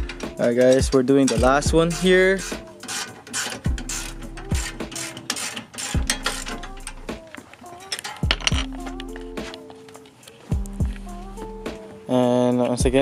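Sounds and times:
ratchet wrench clicking: 0.0s - 11.1s
background music with beat: 0.0s - 13.0s.

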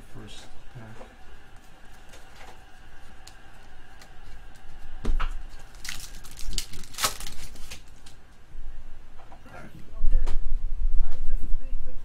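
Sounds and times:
trading cards being shuffled: 5.5s - 8.2s.

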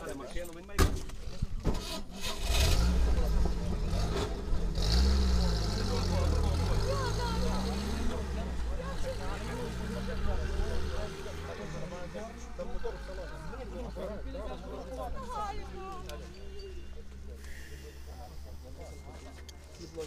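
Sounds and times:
vehicle engine revving: 1.8s - 14.4s
voices: 2.7s - 20.0s.

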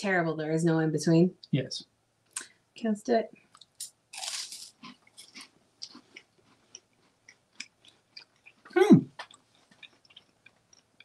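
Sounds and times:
wafers crunching: 3.5s - 11.0s.

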